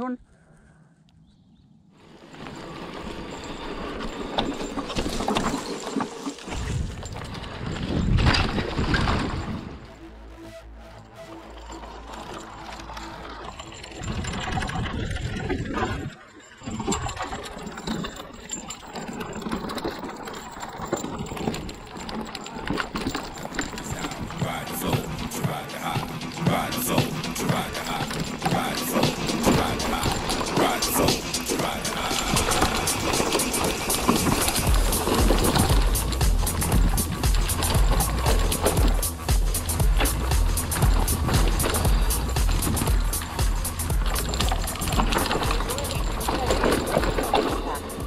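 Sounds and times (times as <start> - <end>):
bike tyres on dirt trail: 0.3 - 10.3, 11.0 - 48.0
bike rattling and knocking: 2.1 - 9.8, 11.6 - 48.0.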